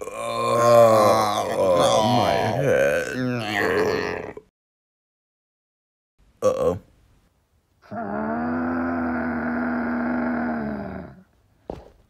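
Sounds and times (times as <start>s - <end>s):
cartoon character angry cry: 0.4s - 4.4s.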